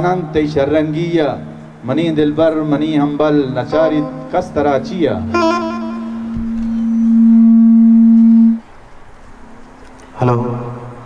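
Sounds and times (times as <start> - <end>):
harmonium holding low note: 0.0 - 8.8.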